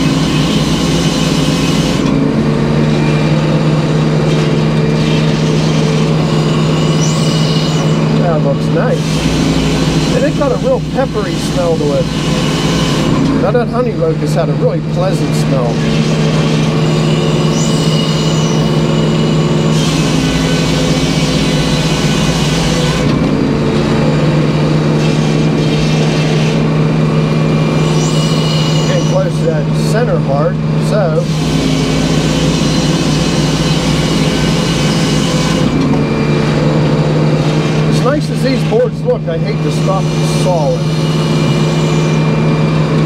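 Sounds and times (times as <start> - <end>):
circular saw cutting log: 0.0 - 43.0
sawmill low drone: 0.0 - 43.0.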